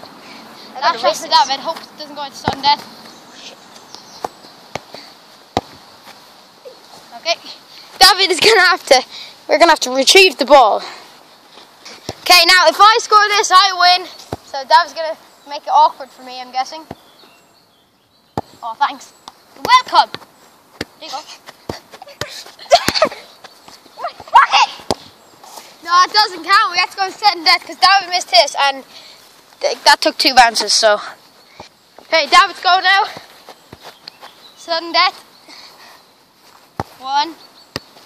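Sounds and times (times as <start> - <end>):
faint outdoor background noise: 0.0 - 38.0
boot kicking football: 1.7 - 2.9, 3.9 - 5.8, 18.4 - 18.6, 19.6 - 25.1, 36.6 - 38.0.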